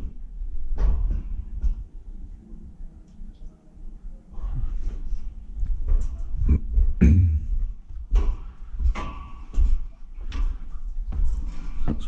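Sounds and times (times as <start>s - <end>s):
footsteps on steel ladder: 5.6s - 12.0s.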